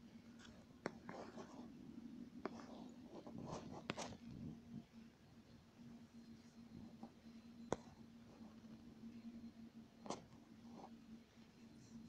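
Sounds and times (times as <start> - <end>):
low steady hum: 0.0 - 12.0
rubbing and tapping on touchscreen: 0.4 - 1.8, 2.4 - 4.2, 6.8 - 8.8, 10.0 - 11.0.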